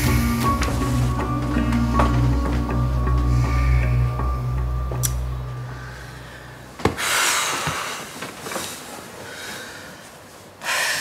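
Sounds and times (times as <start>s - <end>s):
woman breathing: 1.6s - 11.0s.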